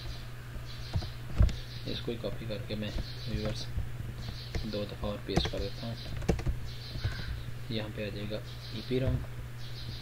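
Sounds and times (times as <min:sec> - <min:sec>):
computer keyboard keystrokes: 0:04.5 - 0:07.2.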